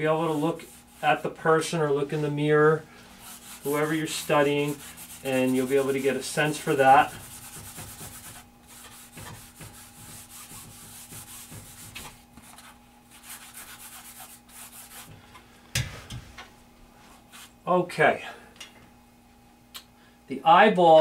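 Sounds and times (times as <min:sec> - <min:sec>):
charcoal scratching on paper: 0:00.3 - 0:01.3, 0:03.2 - 0:15.1.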